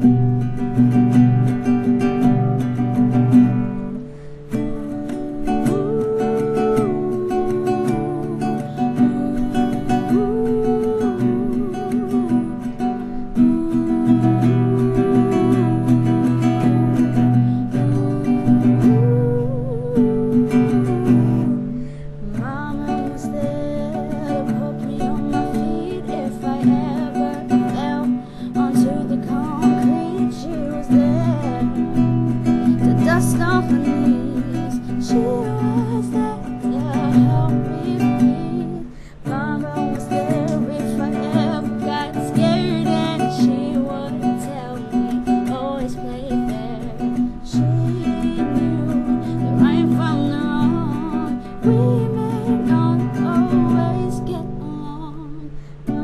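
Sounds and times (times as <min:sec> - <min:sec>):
acoustic guitar chords: 0:00.0 - 0:56.0
girl singing: 0:00.0 - 0:56.0.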